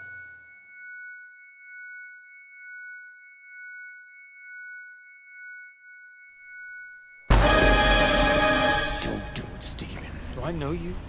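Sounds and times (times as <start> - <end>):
high-pitched ringing tones: 0.0 - 9.8.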